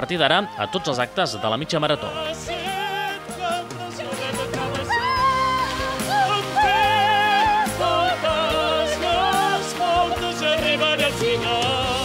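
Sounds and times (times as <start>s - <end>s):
backing music: 0.0s - 12.0s
singer holding long notes: 0.4s - 12.0s.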